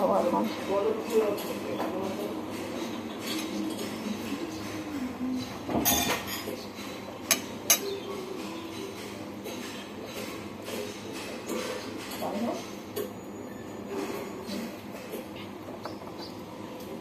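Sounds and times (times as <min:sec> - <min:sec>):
utensil clinking against dish: 0:00.4 - 0:13.2.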